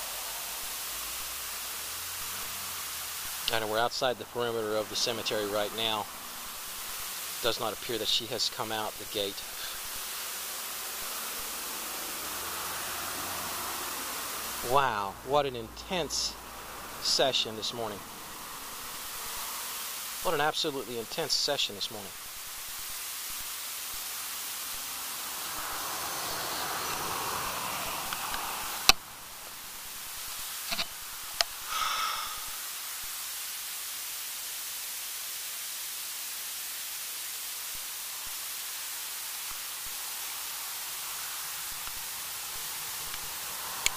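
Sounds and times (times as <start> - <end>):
steady hiss: 0.0 - 43.9.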